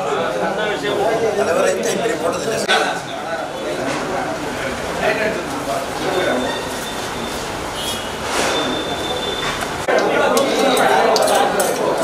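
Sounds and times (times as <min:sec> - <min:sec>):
crowd murmur: 0:00.0 - 0:12.0
room noise: 0:00.0 - 0:12.0.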